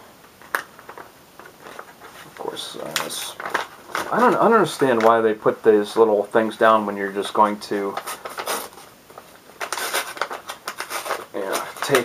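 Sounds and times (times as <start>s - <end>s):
paper envelope tearing: 7.9s - 8.8s, 9.6s - 12.0s.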